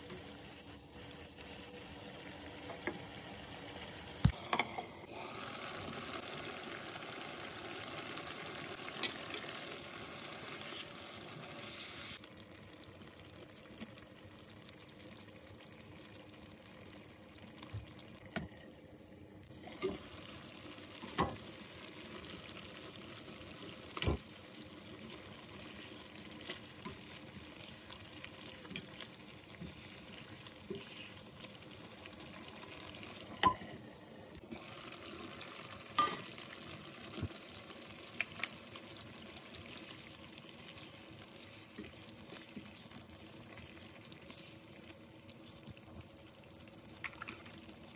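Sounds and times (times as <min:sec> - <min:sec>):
stew bubbling in a pan: 0:00.0 - 0:47.9.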